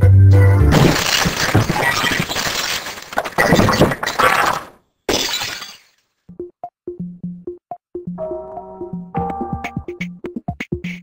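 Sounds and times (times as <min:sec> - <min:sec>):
glass shattering: 0:00.7 - 0:06.0
electronic music with clipped notes: 0:08.0 - 0:11.0.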